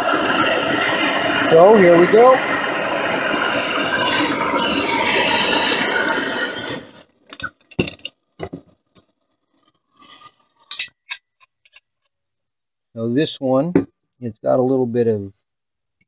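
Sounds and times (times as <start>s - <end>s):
gas torch flame hissing: 0.0s - 7.7s.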